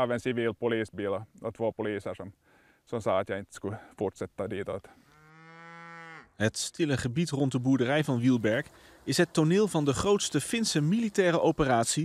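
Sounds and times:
cow mooing: 5.0 - 6.4.

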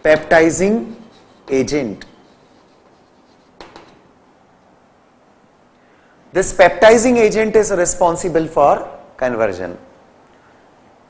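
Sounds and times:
chalk scratching on blackboard: 0.0 - 4.1.

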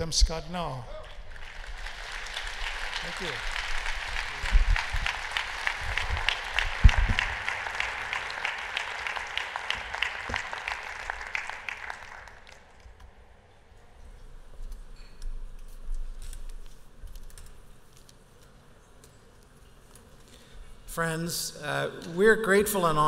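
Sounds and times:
audience applauding: 0.9 - 13.2.

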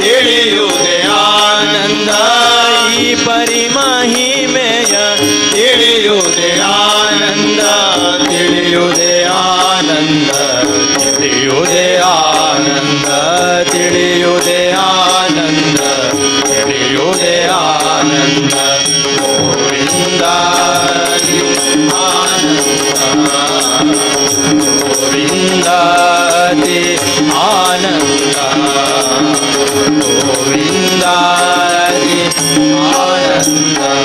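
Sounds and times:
harmonium drone: 0.0 - 34.0
person singing wordless melody: 0.0 - 34.0
tabla drumming: 0.0 - 34.0.

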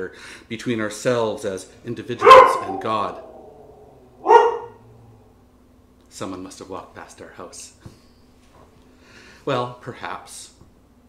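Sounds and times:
dog barking: 2.2 - 5.1.

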